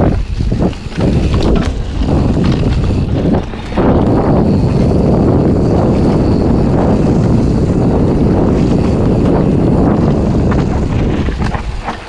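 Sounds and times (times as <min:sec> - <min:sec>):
bike tyres rumbling on dirt: 0:00.0 - 0:12.0
wind buffeting microphone: 0:00.0 - 0:12.0.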